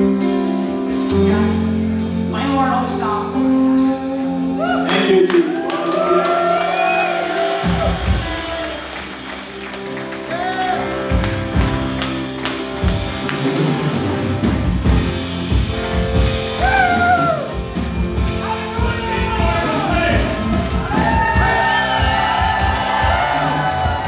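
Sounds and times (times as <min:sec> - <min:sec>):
keyboard chords: 0:00.0 - 0:24.0
bass and drum beats: 0:06.7 - 0:24.0.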